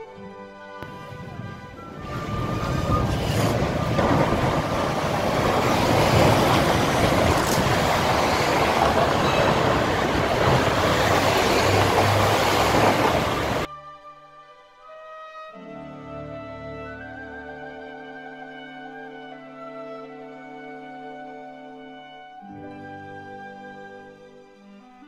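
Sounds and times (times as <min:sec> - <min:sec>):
road traffic rushing past: 0:00.8 - 0:13.7.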